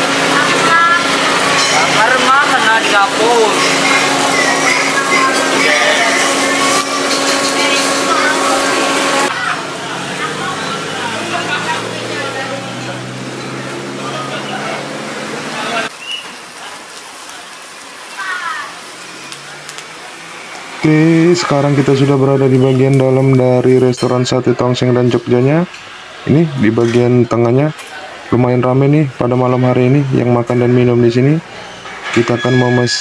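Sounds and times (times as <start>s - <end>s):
blower motor hum: 0.0s - 23.7s
burning charcoal hissing and crackling: 0.0s - 32.5s.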